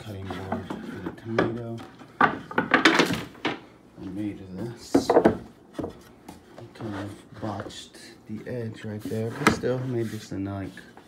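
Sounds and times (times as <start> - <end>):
wooden cutting boards clattering: 0.0 - 3.7, 4.6 - 7.9.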